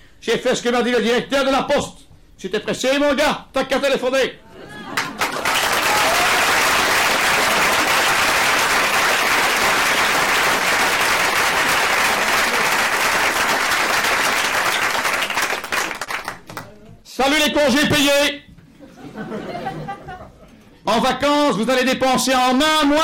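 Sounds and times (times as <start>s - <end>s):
audience applauding: 4.9s - 16.6s.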